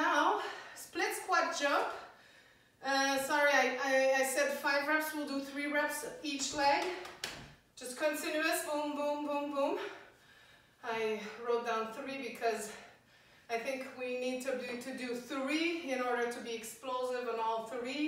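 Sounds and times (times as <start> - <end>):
woman speaking: 0.0 - 2.0, 2.8 - 7.0, 7.8 - 10.0, 10.8 - 12.8, 13.5 - 18.0.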